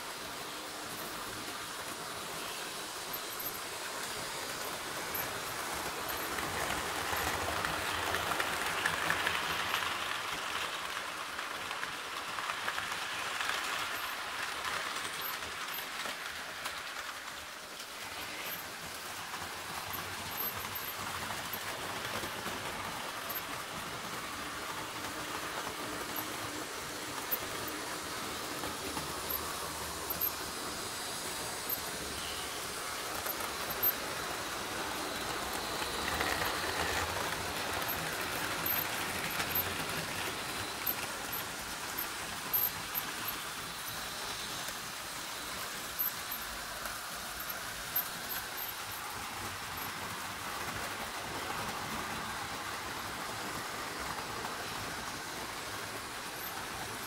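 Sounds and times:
model train wheels rolling on track: 0.0 - 57.0.

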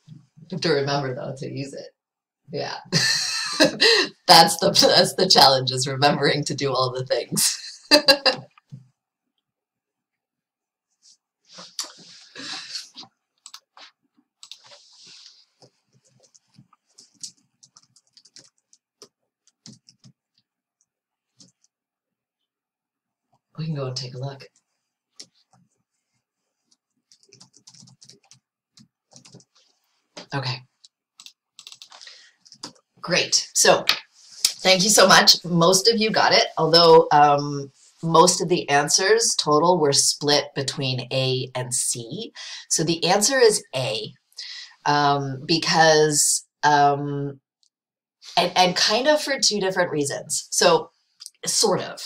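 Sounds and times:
person speaking: 2.5 - 8.8, 11.6 - 13.8, 23.6 - 24.5, 30.2 - 30.6, 31.6 - 47.2
rustling at computer: 10.8 - 21.9, 23.2 - 37.0.

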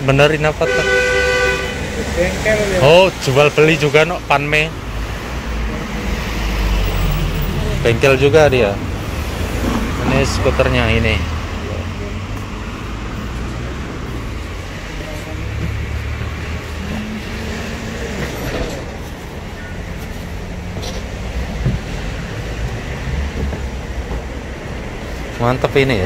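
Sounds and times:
low rumble of traffic: 0.0 - 26.0.

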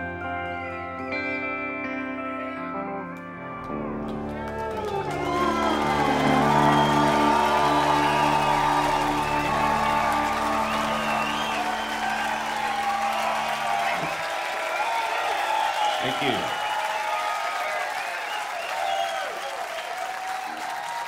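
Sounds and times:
audience cheering and whooping: 4.5 - 21.0
rock band chord ringing: 5.2 - 13.9.

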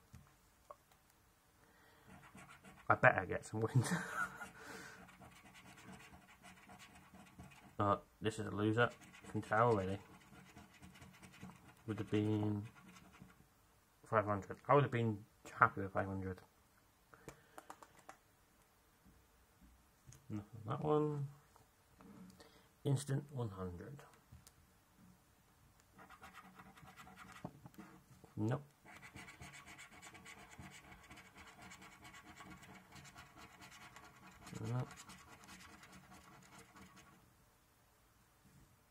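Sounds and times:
coin scraping scratchcard: 5.0 - 7.8, 28.9 - 37.2.

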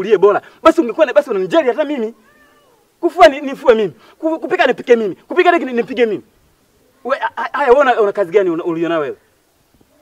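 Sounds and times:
man speaking loudly: 0.0 - 2.2, 3.0 - 6.3, 7.0 - 9.2.

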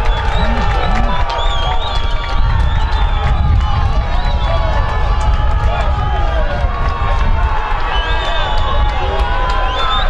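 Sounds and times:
voices calling and shouting: 0.0 - 1.5.

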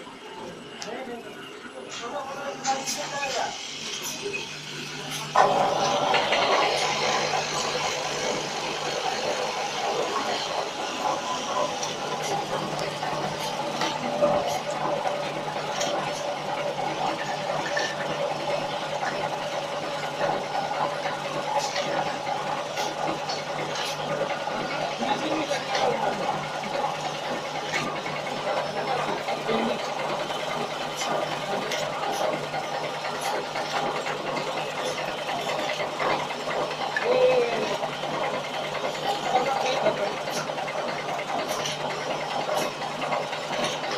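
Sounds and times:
machine whirring: 0.0 - 43.9.

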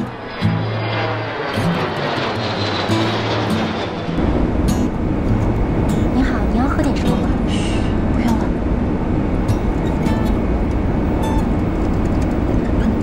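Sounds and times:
airliner cabin low drone: 0.0 - 13.0
jet airliner flying over: 0.0 - 13.0.

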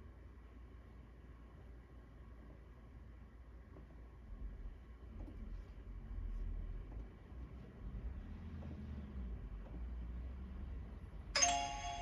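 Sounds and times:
timer alarm chime: 11.4 - 12.0.

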